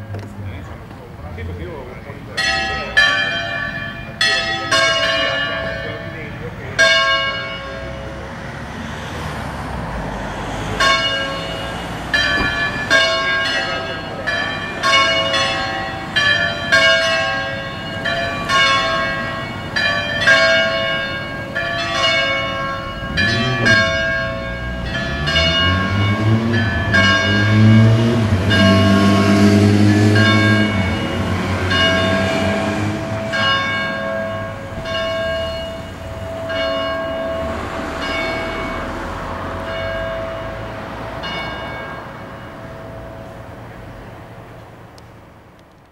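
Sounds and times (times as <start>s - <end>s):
church bells ringing: 0.0s - 45.4s
passing motor vehicle engine: 5.7s - 45.6s.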